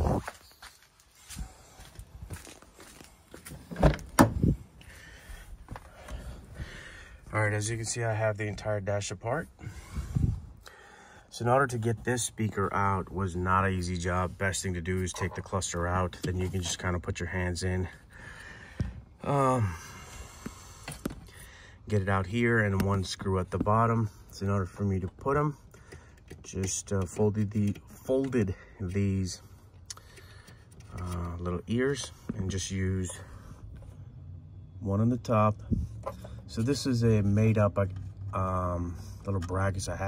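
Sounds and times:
footsteps: 0.0s - 3.8s.

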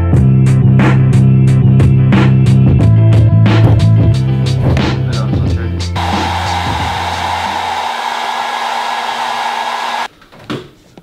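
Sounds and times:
hair dryer running: 6.0s - 10.1s.

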